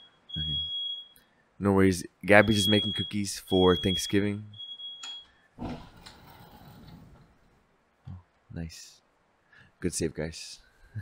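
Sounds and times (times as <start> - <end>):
smoke alarm tone: 0.0 - 1.2, 2.4 - 5.4
faint room hiss: 0.0 - 11.0.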